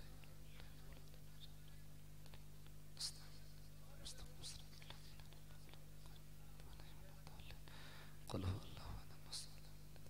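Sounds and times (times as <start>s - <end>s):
person whispering prayers: 0.0s - 7.7s, 8.3s - 10.0s
low electrical hum: 0.0s - 10.0s.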